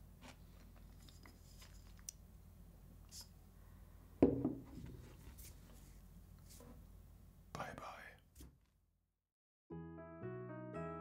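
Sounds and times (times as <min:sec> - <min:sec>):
person whispering: 0:07.5 - 0:08.3.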